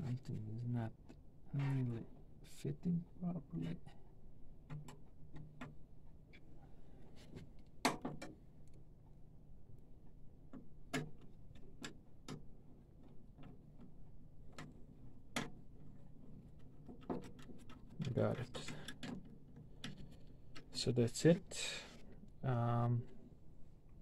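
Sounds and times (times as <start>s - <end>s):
clicks and taps of printer parts: 4.6s - 5.8s, 7.4s - 8.4s.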